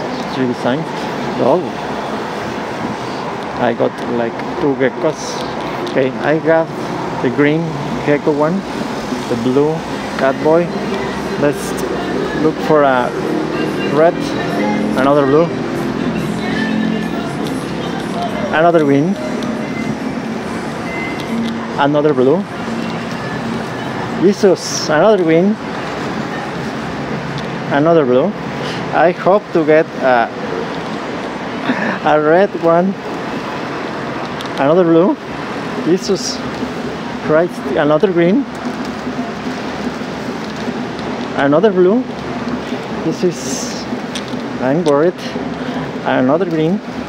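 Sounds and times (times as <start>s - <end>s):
road traffic hum: 0.0s - 47.0s.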